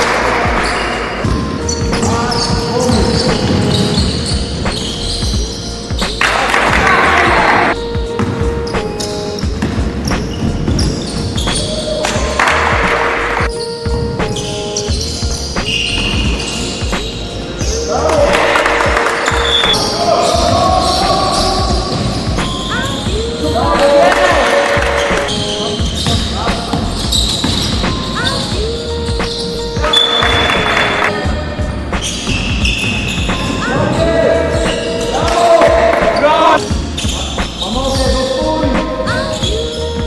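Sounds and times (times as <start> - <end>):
music playing: 0.0 - 40.0
basketball bouncing on wooden court: 8.0 - 13.0, 18.6 - 31.1.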